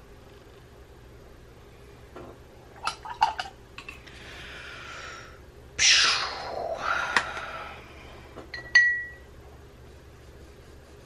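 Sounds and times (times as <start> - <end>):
soft rubbing hiss: 9.5 - 11.0.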